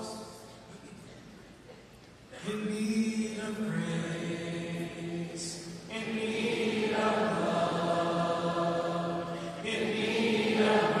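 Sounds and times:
congregation singing: 0:02.4 - 0:11.0.

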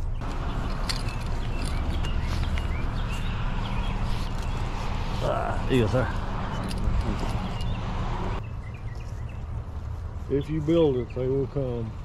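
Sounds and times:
footsteps on grass: 0:00.2 - 0:06.4, 0:08.4 - 0:11.4.

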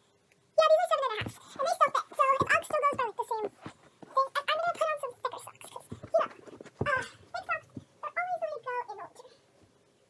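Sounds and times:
dull thuds: 0:01.1 - 0:04.9, 0:05.6 - 0:08.0.

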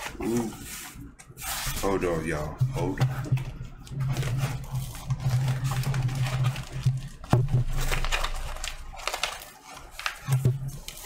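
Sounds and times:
cardboard scraping and rustling: 0:00.0 - 0:11.0.

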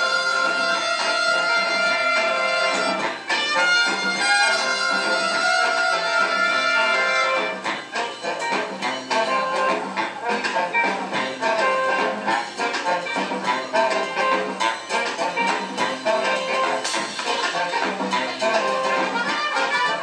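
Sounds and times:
big band latin jazz: 0:00.0 - 0:20.0
percussion: 0:00.0 - 0:20.0.

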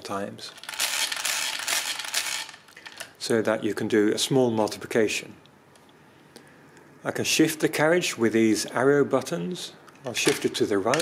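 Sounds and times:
mechanical calculator crank rattling: 0:00.5 - 0:03.1.

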